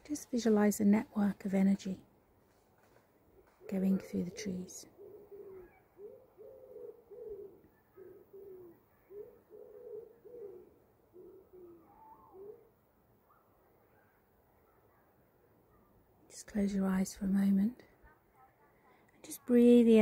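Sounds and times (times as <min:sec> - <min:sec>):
woodpigeon cooing: 0:03.4 - 0:13.4.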